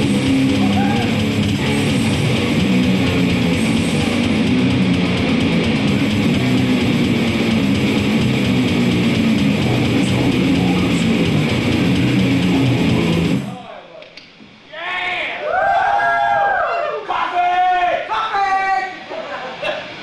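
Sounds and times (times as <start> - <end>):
fast heavy electric guitar: 0.0 - 13.6
man's voice at microphone: 9.6 - 11.2.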